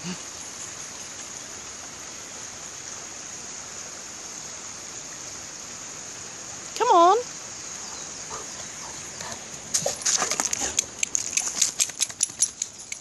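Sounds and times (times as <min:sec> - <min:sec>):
stream hissing: 0:00.0 - 0:13.0
footsteps on pebbles: 0:09.6 - 0:12.8.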